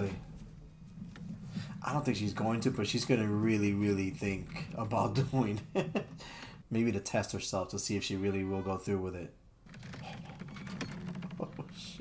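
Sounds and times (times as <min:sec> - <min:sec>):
rapid clicking and rattling: 0:09.6 - 0:12.0.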